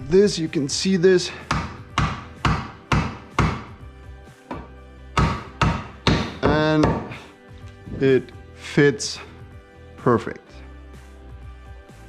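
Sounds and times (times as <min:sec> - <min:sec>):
wooden mallet knocking metal: 0:01.5 - 0:03.7, 0:04.5 - 0:07.2.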